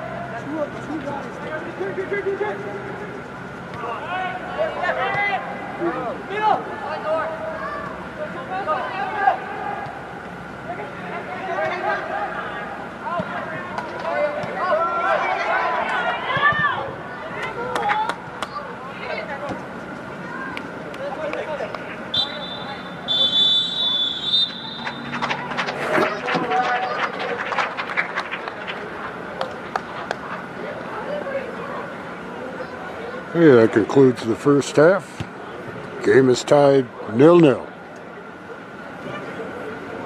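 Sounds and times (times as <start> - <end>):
referee's whistle: 22.1 - 25.1.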